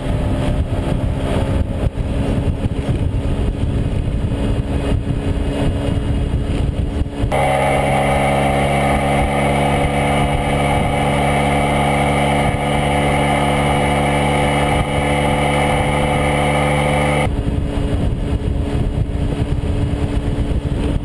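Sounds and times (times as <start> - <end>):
scooter engine running: 0.0 - 21.0.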